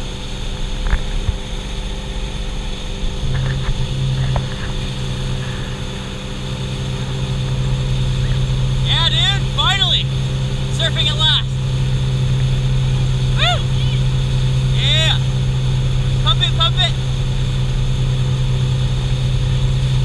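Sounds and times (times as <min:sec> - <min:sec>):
motorboat engine drone: 0:00.0 - 0:20.0
voices shouting: 0:07.5 - 0:17.0.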